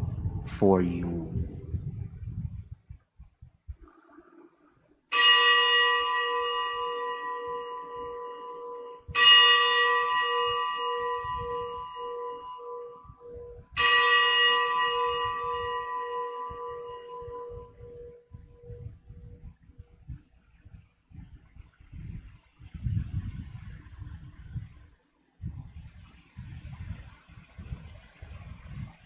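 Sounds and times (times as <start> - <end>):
bell ringing with low hum: 5.1 - 19.6.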